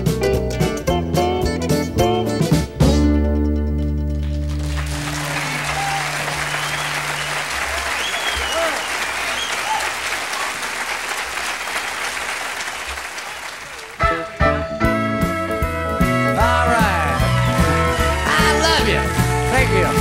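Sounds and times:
country song with guitar: 0:00.0 - 0:04.5, 0:14.0 - 0:20.0
audience applauding and cheering: 0:04.2 - 0:14.9, 0:16.6 - 0:20.0
whistles: 0:05.2 - 0:10.7.

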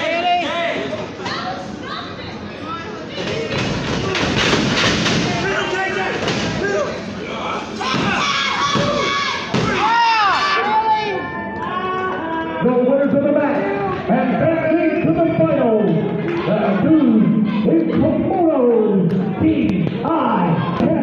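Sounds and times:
crowd shouting and yelling: 0:00.0 - 0:21.0.

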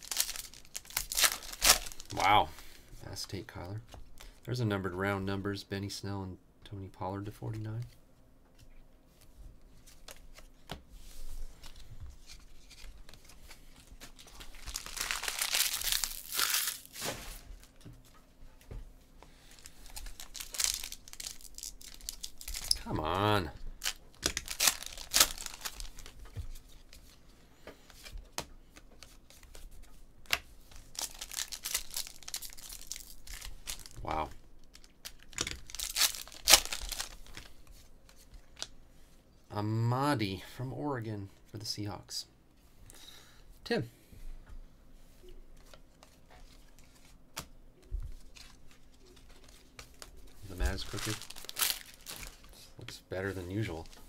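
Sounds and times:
foil packs tearing and crinkling: 0:00.0 - 0:02.4, 0:14.2 - 0:17.7, 0:19.5 - 0:22.9, 0:23.8 - 0:26.2, 0:30.8 - 0:34.1, 0:34.7 - 0:37.5, 0:49.9 - 0:52.5.

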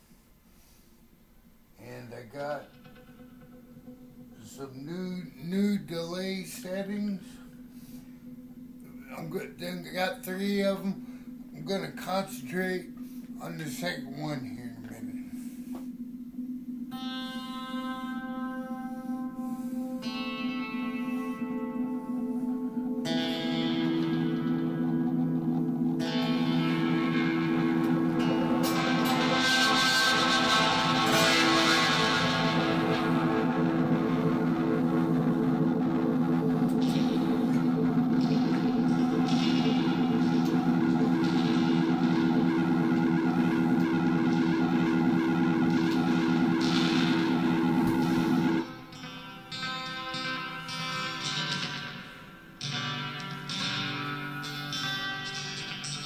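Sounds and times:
electric guitar with delay: 0:01.7 - 0:56.0.

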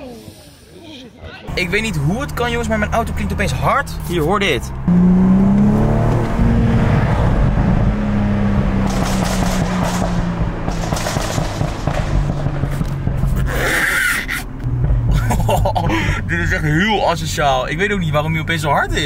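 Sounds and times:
man talking: 0:01.2 - 0:04.8, 0:15.9 - 0:19.0
car engine and exhaust from inside: 0:01.5 - 0:19.0.

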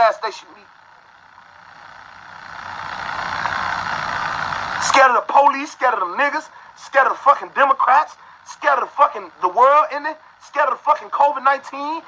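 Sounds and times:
motor vehicle passing: 0:00.0 - 0:10.4.

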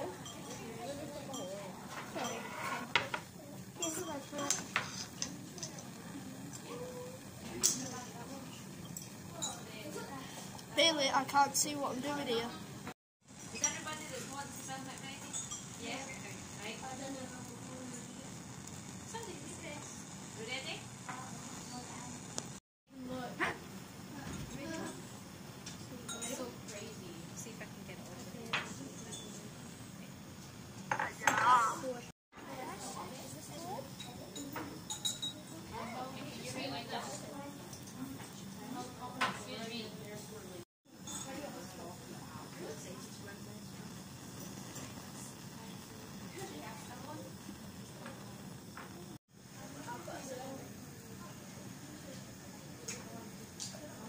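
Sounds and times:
people chattering: 0:00.0 - 0:12.8, 0:13.6 - 0:23.4, 0:31.0 - 0:54.0
light clink: 0:34.0 - 0:35.5.

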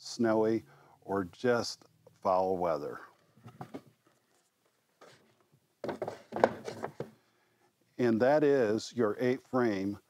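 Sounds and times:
wooden knocks: 0:05.8 - 0:07.2.

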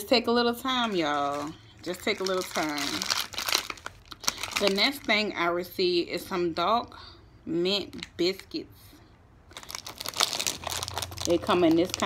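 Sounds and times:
plastic wrapper crinkling: 0:00.6 - 0:05.4, 0:09.5 - 0:12.0.

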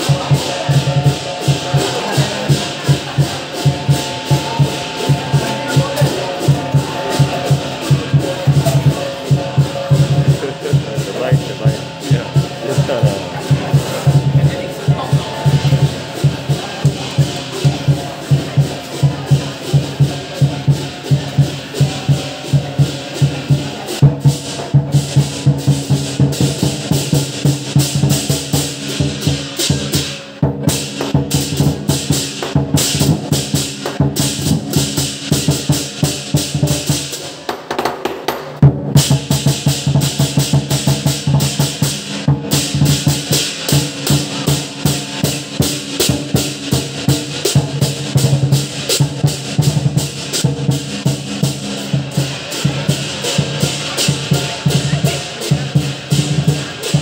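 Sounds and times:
gong: 0:00.0 - 0:37.2
cymbals clashing: 0:00.0 - 0:57.0
drum beating fast rhythm: 0:00.0 - 0:57.0.

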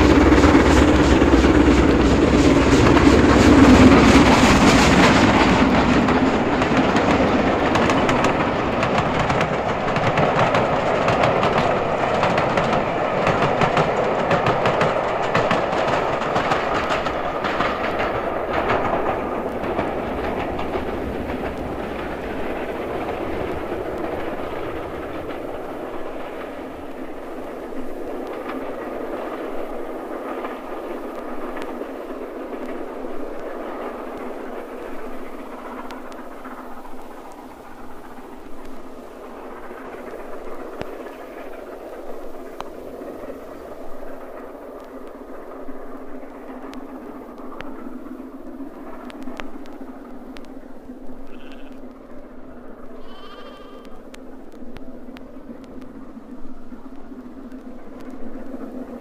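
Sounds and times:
steam train running: 0:00.0 - 0:59.0.

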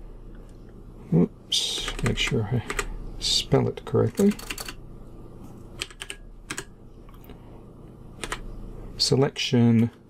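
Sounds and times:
computer keyboard keys clicking: 0:01.8 - 0:02.9, 0:04.1 - 0:04.8, 0:05.8 - 0:06.7, 0:08.2 - 0:08.4.

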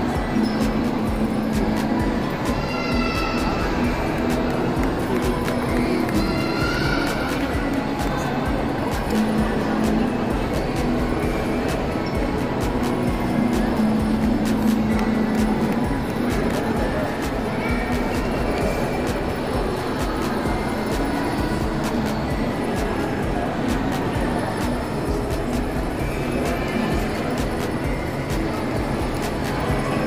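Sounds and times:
background music: 0:00.0 - 0:30.0
chatter of many people: 0:00.0 - 0:30.0.

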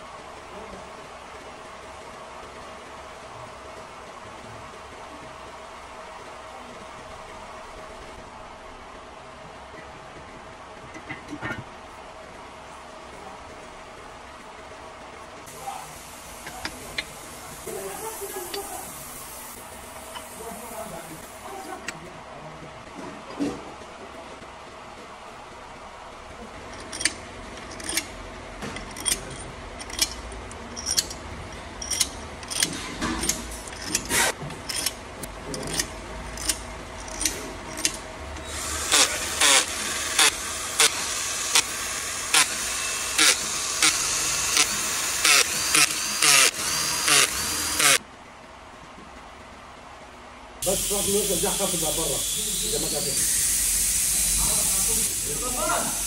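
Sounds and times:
metal engine parts clicking: 0:26.7 - 0:28.2, 0:28.8 - 0:38.1
cordless drill running: 0:38.4 - 0:48.0.

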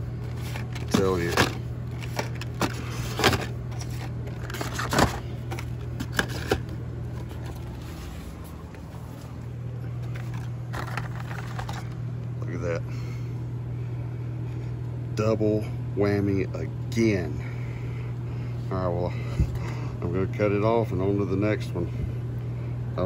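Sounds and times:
steady low hum: 0:00.0 - 0:23.0
plastic packages clicking and rattling: 0:00.2 - 0:07.8, 0:10.0 - 0:12.0.

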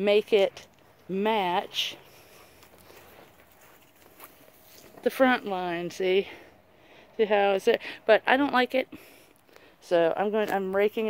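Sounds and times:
faint footsteps on mulch: 0:00.1 - 0:06.4.

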